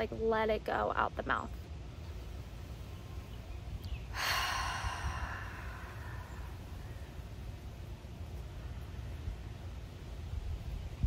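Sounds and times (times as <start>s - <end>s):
low wind rumble on microphone: 1.3s - 11.0s
woman exhaling through mouth: 4.1s - 7.0s.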